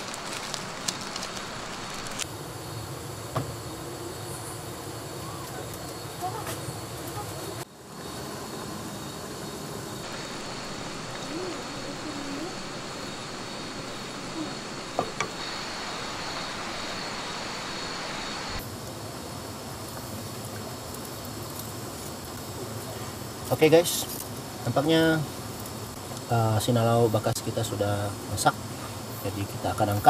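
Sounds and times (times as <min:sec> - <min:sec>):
meat sizzling on grill: 0:00.0 - 0:02.3, 0:10.0 - 0:30.0
prawns sizzling in a wok: 0:00.0 - 0:02.9.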